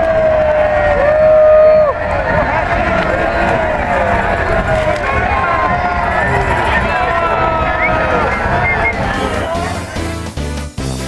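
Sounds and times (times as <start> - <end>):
loud held shout: 0.0 - 10.1
large outdoor crowd: 0.0 - 11.0.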